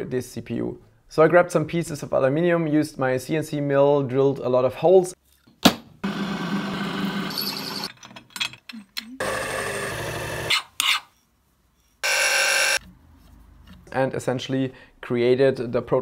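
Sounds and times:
milling machine cutting metal: 0:12.0 - 0:12.8.

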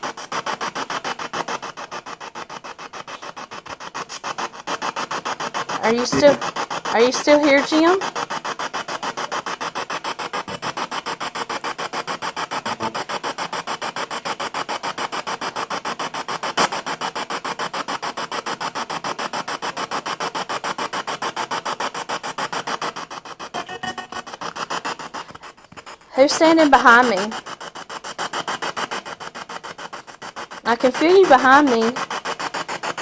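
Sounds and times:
choppy radio static: 0:05.8 - 0:08.0, 0:12.5 - 0:13.1, 0:23.4 - 0:25.3, 0:26.2 - 0:27.4, 0:30.7 - 0:32.0.

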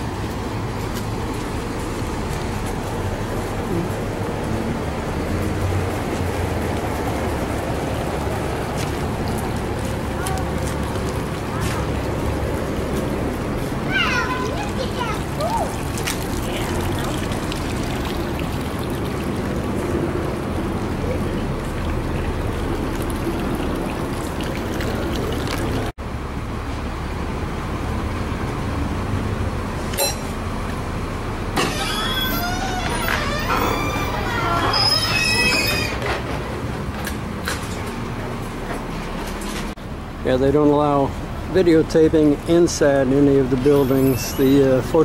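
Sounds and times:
fountain splashing into pool: 0:00.0 - 0:25.9, 0:40.4 - 0:45.0.

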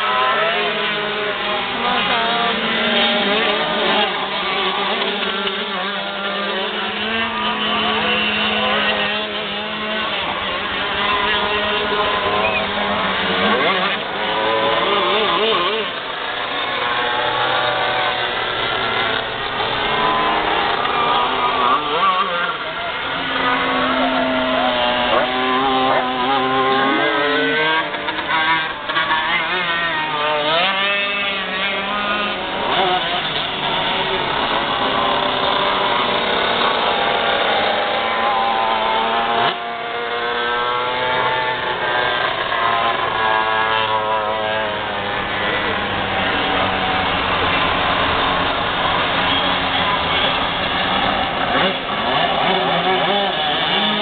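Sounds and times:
kart engines racing: 0:00.0 - 0:54.0.

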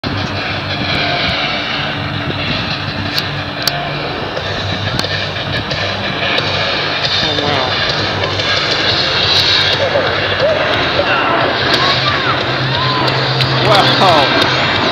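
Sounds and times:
jet engine noise: 0:00.0 - 0:14.9
people's voices: 0:06.2 - 0:14.9.

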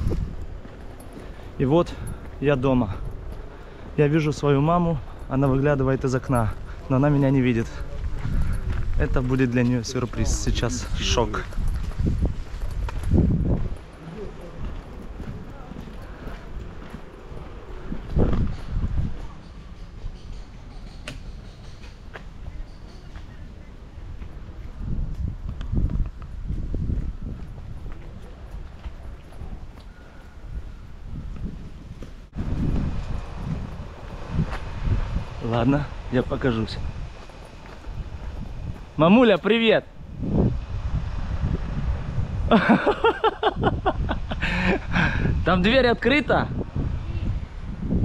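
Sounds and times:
footsteps on paved path: 0:00.0 - 0:43.7
wind rumble on microphone: 0:00.0 - 0:48.0.

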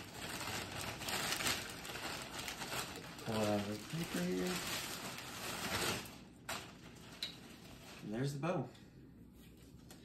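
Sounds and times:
plastic wrapping rustling: 0:00.0 - 0:08.6.

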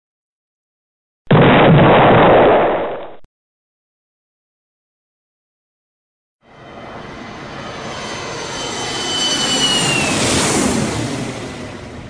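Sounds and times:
jet plane flyby: 0:06.4 - 0:12.0.

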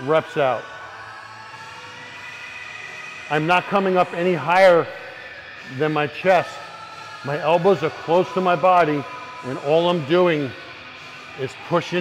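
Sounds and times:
gym room background hum: 0:00.0 - 0:12.0.

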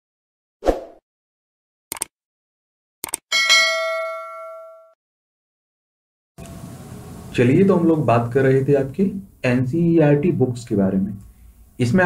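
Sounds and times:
notification bell ding: 0:03.3 - 0:05.0.

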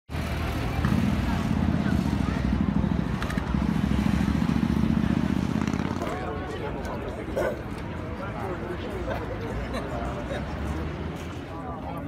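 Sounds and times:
faint crowd voices: 0:00.1 - 0:12.0.

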